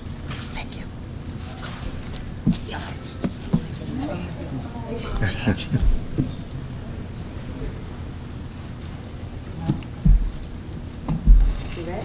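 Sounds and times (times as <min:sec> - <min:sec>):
low indistinct talk: 0:02.6 - 0:08.6
sharp knocks: 0:10.0 - 0:10.5, 0:11.1 - 0:11.7.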